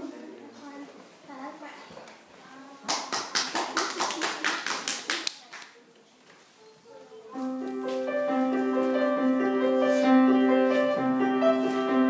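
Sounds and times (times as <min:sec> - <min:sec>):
hands clapping: 0:02.8 - 0:05.8.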